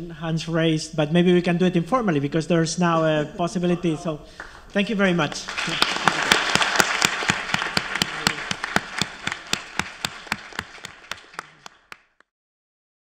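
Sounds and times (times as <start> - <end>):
audience applauding: 5.2 - 12.3
close single person clapping: 5.5 - 12.2.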